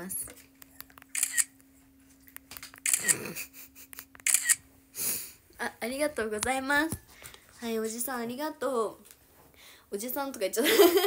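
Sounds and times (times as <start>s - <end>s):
faint steady hum: 0.0s - 11.0s
phone camera shutter sound: 1.1s - 1.6s, 2.6s - 3.3s, 4.2s - 4.6s.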